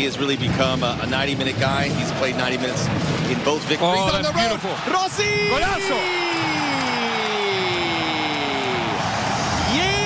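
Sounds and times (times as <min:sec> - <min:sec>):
stadium crowd cheering: 0:01.8 - 0:10.0.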